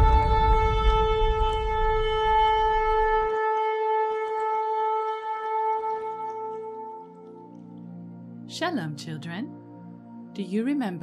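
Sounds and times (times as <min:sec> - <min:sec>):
low rumble: 0:00.0 - 0:03.3
shofar blast: 0:00.0 - 0:07.1.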